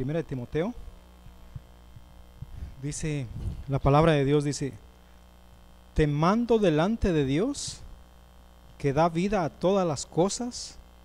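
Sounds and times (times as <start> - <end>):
man speaking: 0.0 - 0.8, 2.8 - 4.8, 6.0 - 7.9, 8.8 - 10.8
electrical mains hum: 0.0 - 11.0.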